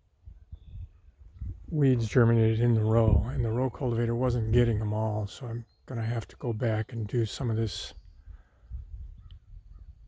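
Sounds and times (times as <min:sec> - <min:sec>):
faint bird calls: 0:05.4 - 0:10.0.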